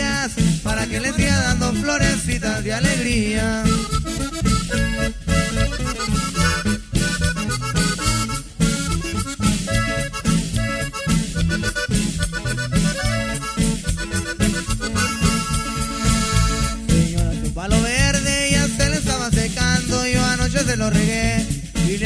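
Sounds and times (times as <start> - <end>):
bass line: 0.0 - 22.0
button accordion melody: 0.0 - 22.0
drum kit beat: 0.0 - 22.0.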